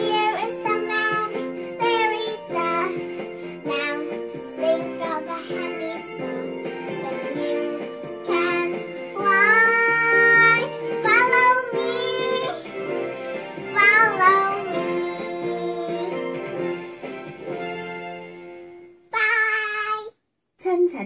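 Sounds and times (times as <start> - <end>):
girl singing children's song: 0.0 - 12.9, 13.6 - 16.5, 19.1 - 20.2
backing music track: 0.0 - 19.1.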